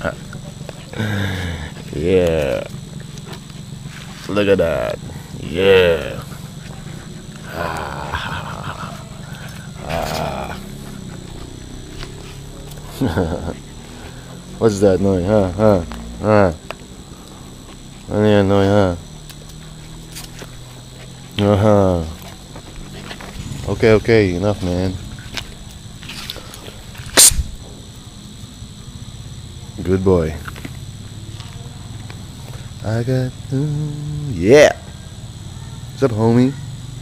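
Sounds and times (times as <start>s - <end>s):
low background hum: 0.0s - 37.0s
dog vocalizing: 4.6s - 14.5s, 16.5s - 25.7s
dog puffing: 19.2s - 23.7s.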